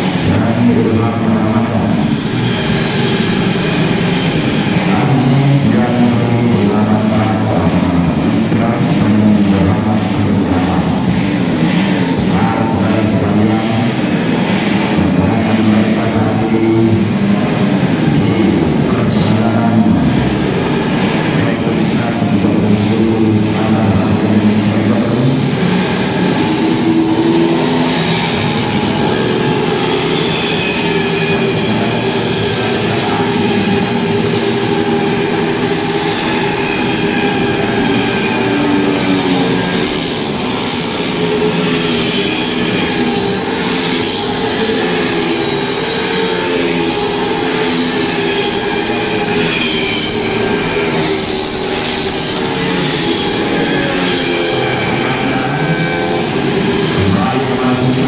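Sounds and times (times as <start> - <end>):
scooter engines at high revs: 0.0 - 58.0.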